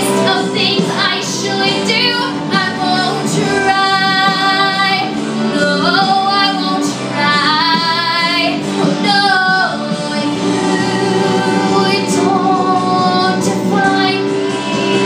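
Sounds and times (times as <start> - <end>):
woman singing with vibrato: 0.0 - 15.0.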